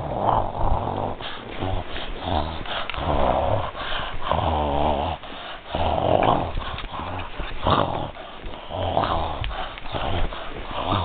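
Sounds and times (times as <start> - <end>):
dogs growling: 0.0 - 11.0.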